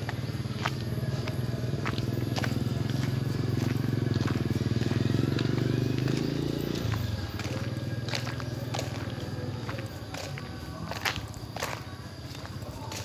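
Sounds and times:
small engine running: 0:00.0 - 0:10.8.

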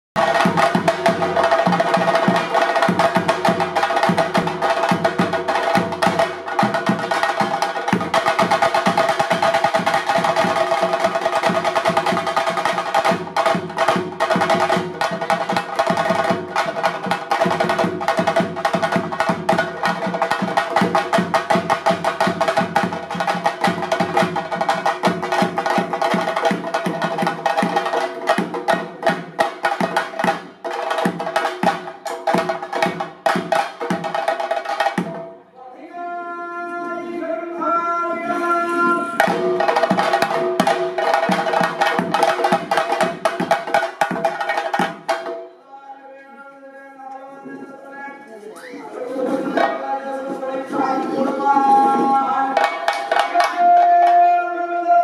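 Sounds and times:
fast drum roll with sticks: 0:00.2 - 0:35.1, 0:39.2 - 0:45.3.

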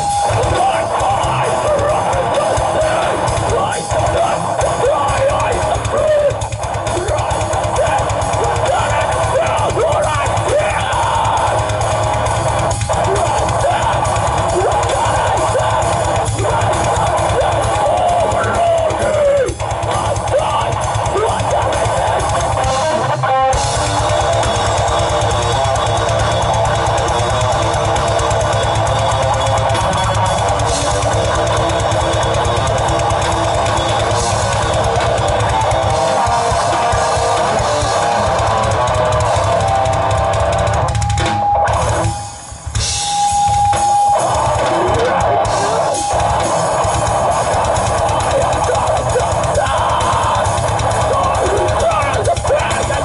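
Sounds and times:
vocals: 0:00.0 - 0:23.2, 0:44.2 - 0:53.0
bass guitar: 0:00.0 - 0:53.0
distorted electric guitars: 0:00.0 - 0:53.0
pounding drum kit: 0:00.0 - 0:53.0.

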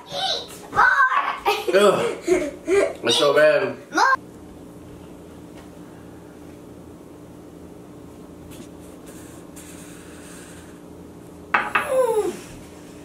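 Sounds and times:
child crying out: 0:11.8 - 0:12.5.

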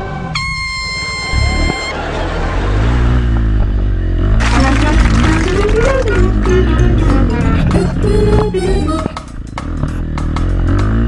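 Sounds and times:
low wavering rumble: 0:00.0 - 0:10.0
music track: 0:04.4 - 0:10.4.

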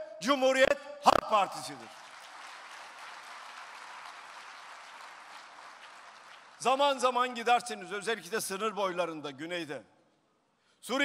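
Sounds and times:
audience applauding: 0:01.6 - 0:07.0.

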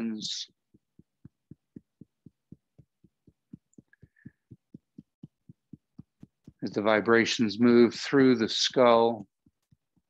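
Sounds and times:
fingertips tapping on face: 0:00.0 - 0:07.8, 0:09.2 - 0:10.0.

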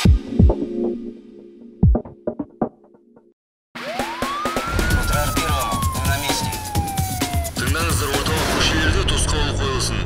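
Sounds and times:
electronic music with steady beat: 0:00.0 - 0:02.9, 0:03.8 - 0:08.2
siren sound effect: 0:03.8 - 0:08.4.

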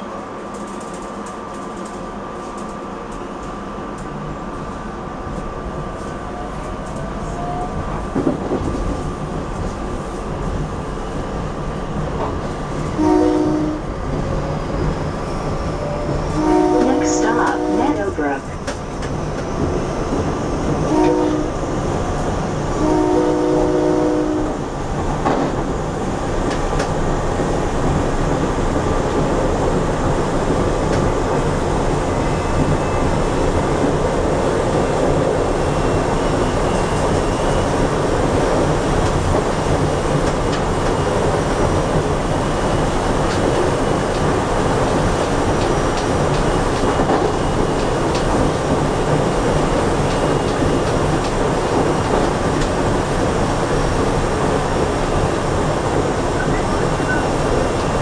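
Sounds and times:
train wheels rumbling on track: 0:00.0 - 0:58.0
train horn blasts: 0:12.9 - 0:13.9, 0:15.8 - 0:18.4, 0:20.8 - 0:21.7, 0:22.7 - 0:24.6.

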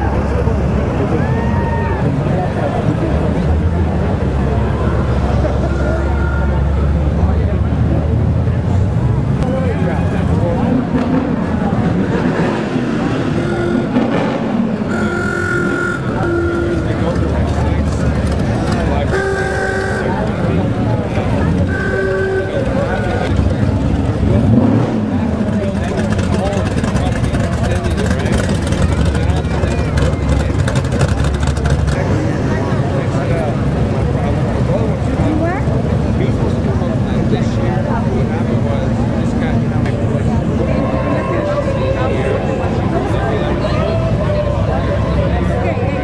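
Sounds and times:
car engines rumbling past: 0:00.0 - 0:46.0
crowd chatter: 0:00.0 - 0:46.0
short car horn toots: 0:13.4 - 0:14.1, 0:14.9 - 0:17.3, 0:19.0 - 0:20.2, 0:21.7 - 0:23.3.

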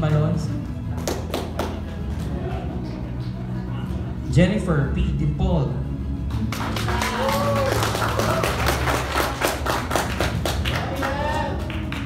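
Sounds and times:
background music: 0:00.0 - 0:12.0
audience clapping: 0:00.9 - 0:03.5, 0:06.3 - 0:12.0.

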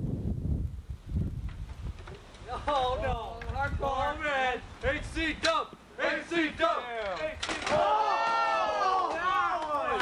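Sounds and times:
young men shouting: 0:06.0 - 0:10.0
long yell: 0:07.7 - 0:10.0.

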